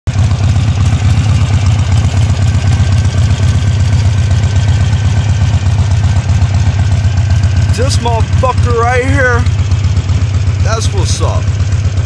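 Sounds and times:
motorcycle engine idling: 0.1s - 12.0s.

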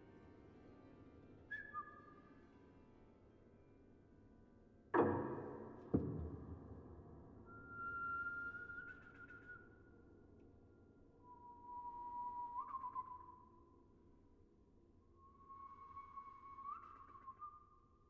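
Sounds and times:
faint whistled notes: 1.5s - 2.4s, 7.4s - 14.1s, 15.1s - 18.0s.

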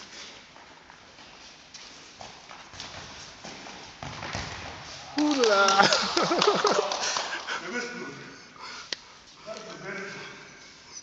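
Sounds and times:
football bouncing on floor: 2.5s - 5.0s.

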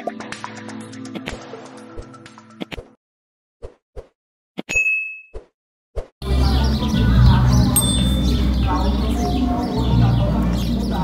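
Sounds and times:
bright notification ding: 7.8s - 8.4s.

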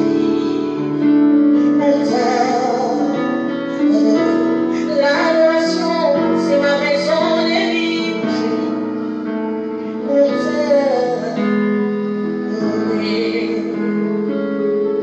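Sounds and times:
instrumental backing of held chords: 0.0s - 15.0s
woman singing into a microphone: 0.0s - 15.0s.

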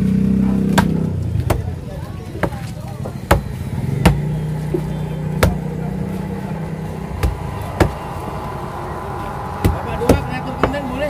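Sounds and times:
cleaver chopping on wooden block: 0.7s - 1.7s, 2.4s - 4.3s, 5.4s - 5.6s
low engine drone: 3.0s - 11.0s.

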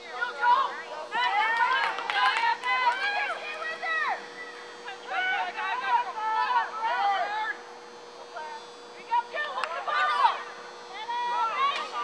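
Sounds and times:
faint steady hum: 0.0s - 12.0s.

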